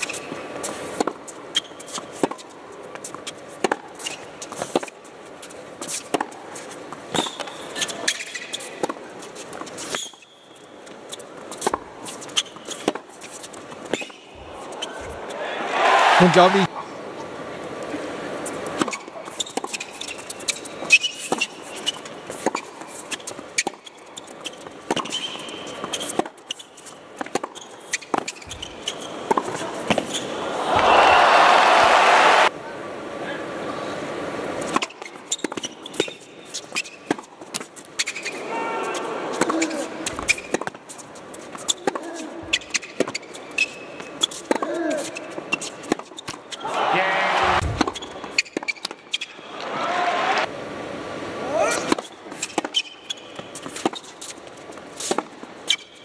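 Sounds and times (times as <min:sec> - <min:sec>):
crowd applause: 0:15.4 - 0:16.7, 0:30.4 - 0:32.5, 0:46.7 - 0:47.8
ball bouncing on hard court: 0:47.5 - 0:49.0
tennis ball hit by rackets: 0:47.5 - 0:49.0.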